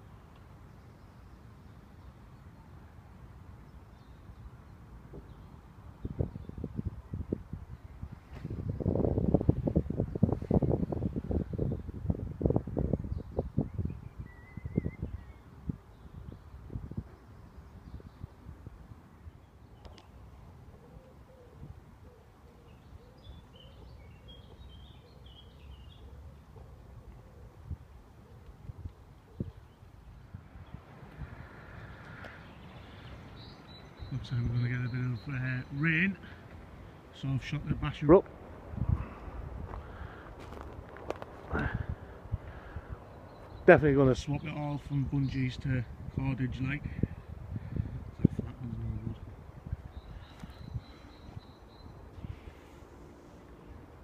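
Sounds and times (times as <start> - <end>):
woodland ambience: 0.0 - 54.0
faint bird chirps: 13.1 - 18.4, 49.8 - 53.0.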